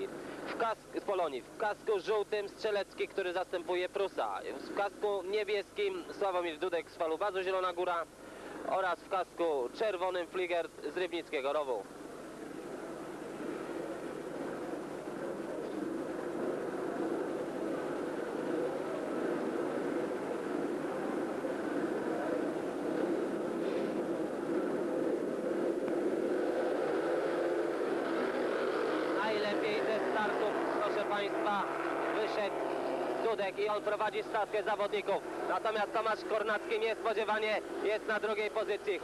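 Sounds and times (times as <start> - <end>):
motorcycle engines revving and racing: 12.4 - 39.0.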